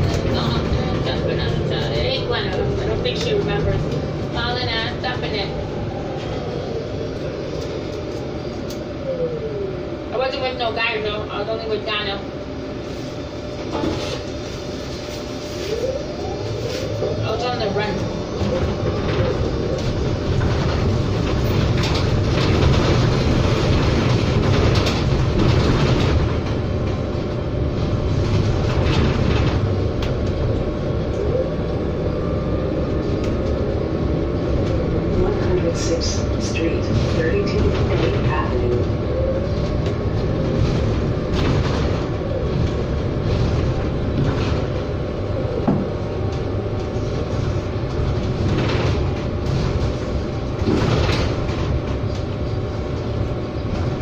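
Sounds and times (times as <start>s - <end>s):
bus body rattles and clicks: 0.0s - 6.4s, 7.0s - 8.9s, 13.4s - 15.7s, 16.8s - 54.0s
road and tyre rumble: 0.0s - 54.0s.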